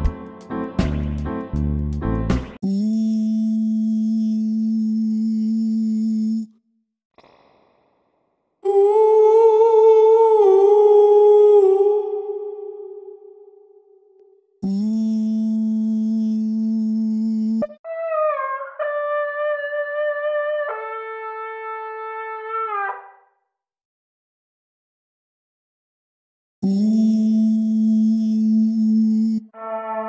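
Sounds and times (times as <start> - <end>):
wordless sung vowel notes with reverb: 8.6 - 14.2.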